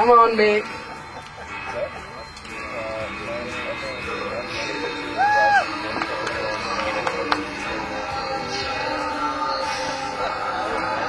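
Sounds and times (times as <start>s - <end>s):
indistinct voices talking: 0.0s - 11.0s
outdoor background noise: 0.0s - 11.0s.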